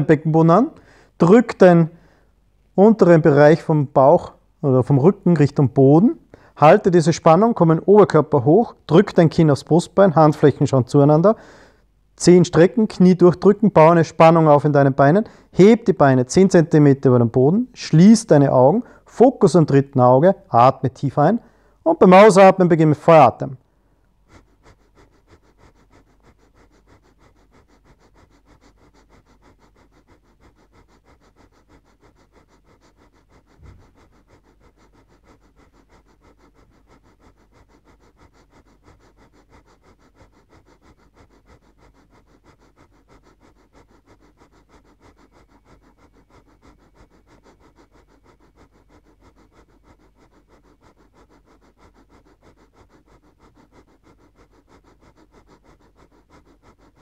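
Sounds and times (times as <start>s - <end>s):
rapid breathing through nose: 0.0s - 57.0s.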